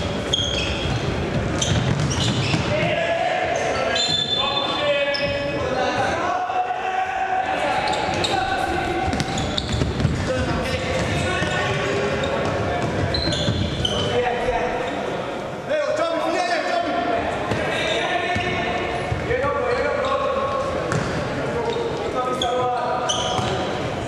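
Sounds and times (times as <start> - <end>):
ball bouncing on wooden floor: 1.3 - 2.6.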